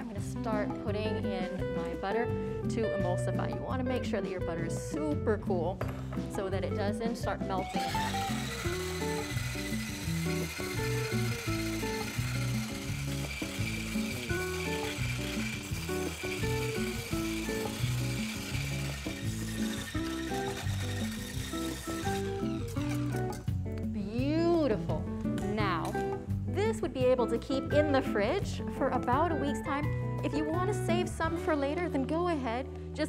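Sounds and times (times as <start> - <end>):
background music: 0.0 - 33.0
immersion blender motor whine: 7.6 - 23.4.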